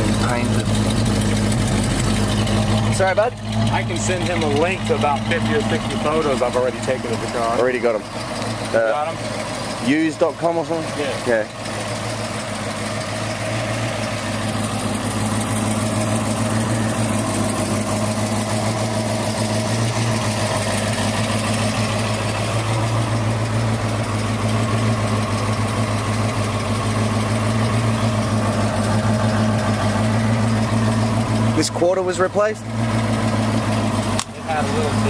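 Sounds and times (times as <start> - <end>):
car engine idling: 0.0 - 35.0.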